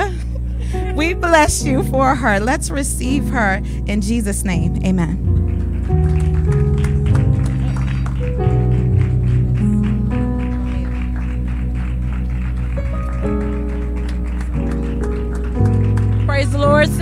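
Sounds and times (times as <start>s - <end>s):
instrumental music sustained chords: 0.0s - 17.0s.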